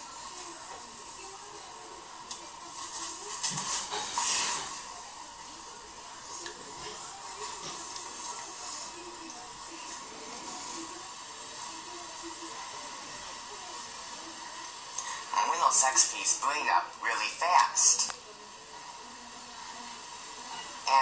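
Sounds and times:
faint murmur: 0.0 - 21.0
room tone hiss: 0.0 - 21.0.

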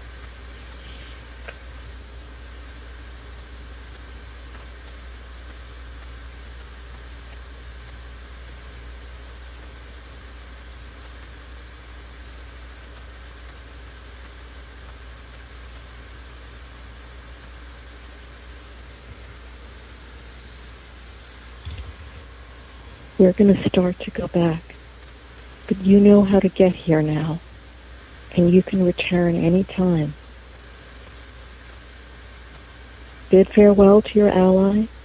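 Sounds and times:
low hum: 0.0 - 35.0
steady hiss: 0.0 - 35.0.

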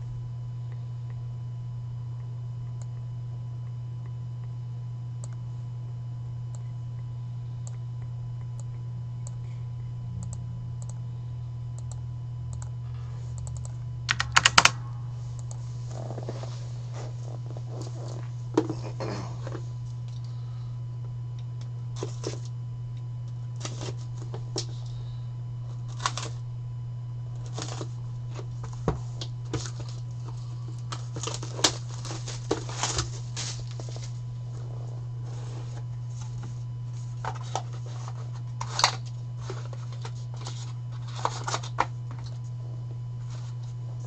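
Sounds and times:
low steady hum: 0.0 - 44.0
shrink-wrap crinkling: 25.7 - 26.4, 27.4 - 42.3.

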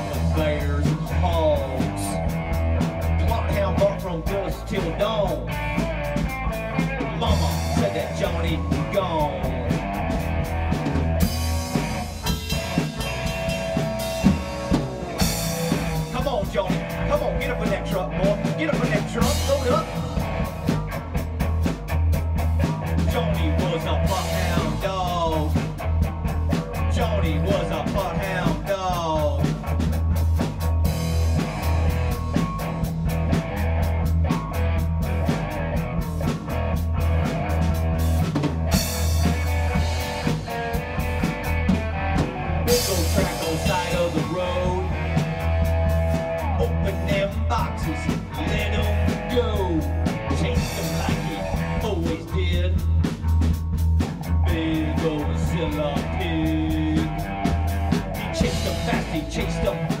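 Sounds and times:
drum kit and bass beat: 0.0 - 60.0
guitar with sliding notes: 0.0 - 60.0.

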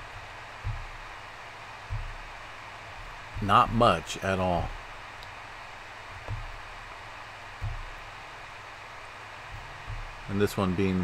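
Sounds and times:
soft low thumps: 0.0 - 10.8
faint background hiss: 0.0 - 11.0.

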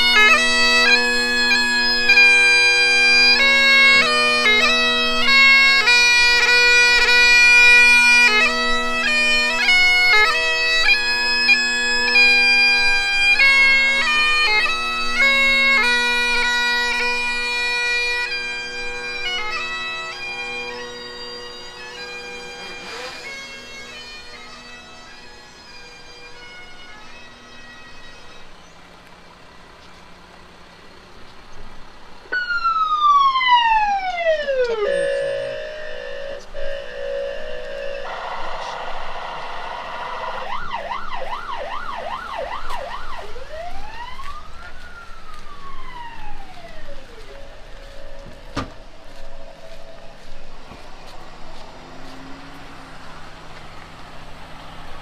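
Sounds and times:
bagpipe-like sustained music: 0.0 - 29.6, 32.3 - 55.0
electronic siren: 22.0 - 24.6, 32.3 - 53.6.

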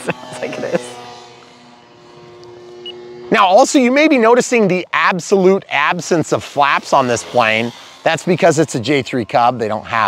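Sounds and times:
model plane motor droning: 0.0 - 10.0.

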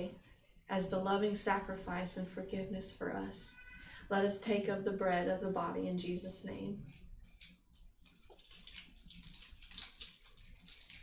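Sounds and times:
plastic packaging crinkling: 6.9 - 11.0.

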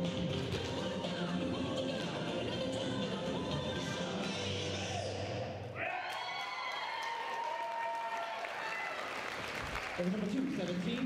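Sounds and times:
dance music: 0.0 - 5.7
audience cheering and whooping: 5.8 - 9.9
audience applauding: 6.1 - 11.0.

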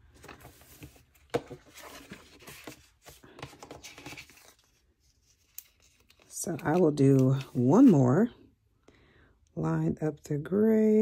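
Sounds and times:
paper rustling: 0.1 - 8.0.

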